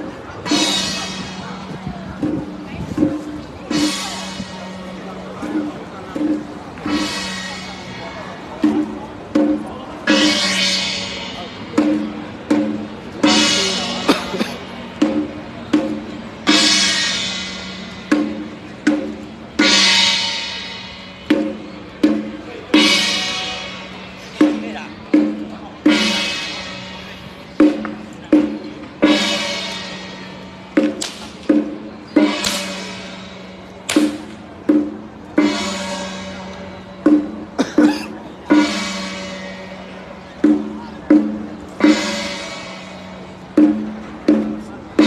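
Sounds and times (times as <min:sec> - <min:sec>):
drum strikes: 0:00.0 - 0:45.0.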